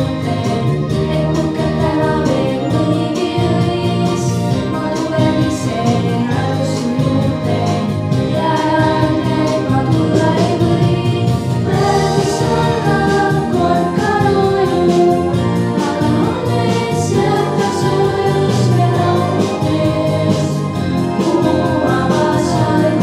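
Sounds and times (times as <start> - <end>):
instrumental accompaniment: 0.0 - 23.0
girls singing together: 8.4 - 23.0.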